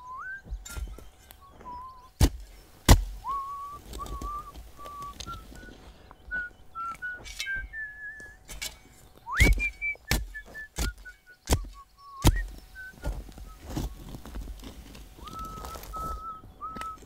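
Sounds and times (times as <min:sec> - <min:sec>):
man whistling a slow tune: 0:00.0 - 0:02.6, 0:03.2 - 0:14.4, 0:15.0 - 0:17.0
shovel thudding on ground: 0:00.4 - 0:01.6, 0:02.2 - 0:05.4, 0:07.0 - 0:07.8, 0:08.4 - 0:14.5.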